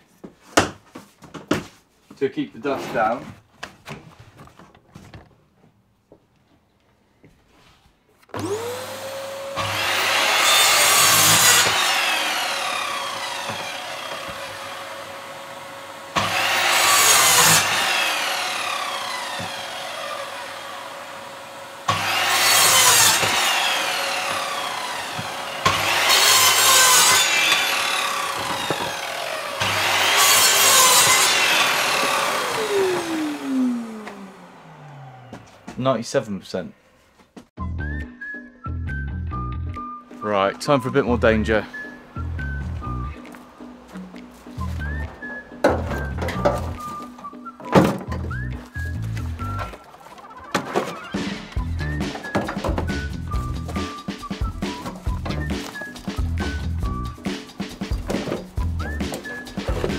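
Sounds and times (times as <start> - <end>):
saw motor running: 8.4 - 35.8
saw cutting through wood: 8.4 - 36.1, 41.0 - 59.9.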